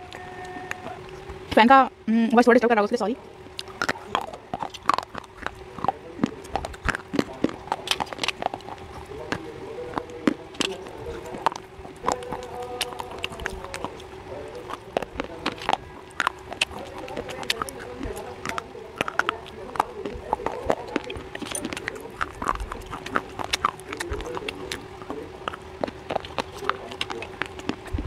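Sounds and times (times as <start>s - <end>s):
steady low hum: 0.0s - 28.0s
crisp chewing crunches: 3.4s - 28.0s.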